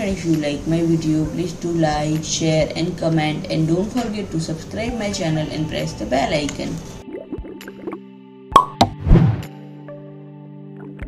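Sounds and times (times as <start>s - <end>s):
sharp pop sound effects: 8.5s - 9.5s
whooshing hit with low thud: 8.8s - 9.5s.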